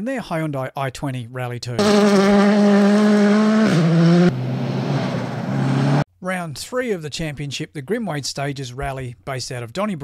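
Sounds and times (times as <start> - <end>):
rally car engine revving: 1.8 - 6.0.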